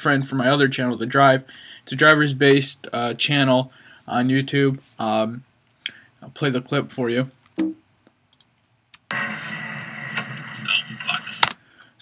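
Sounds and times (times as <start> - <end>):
people talking: 0.0 - 5.4, 6.2 - 7.3, 10.2 - 11.6.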